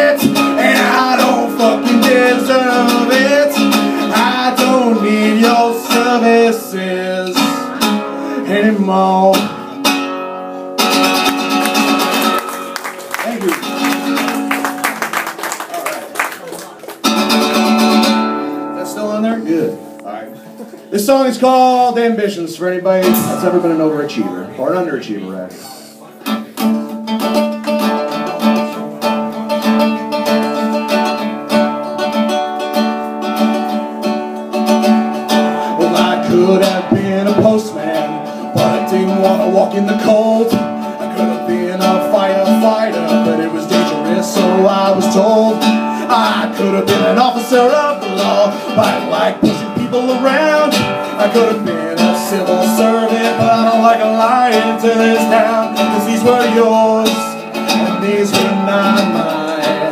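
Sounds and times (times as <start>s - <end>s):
man singing: 0.0s - 9.8s, 20.9s - 24.1s, 35.2s - 59.9s
acoustic guitar strumming: 0.0s - 15.7s, 16.7s - 59.9s.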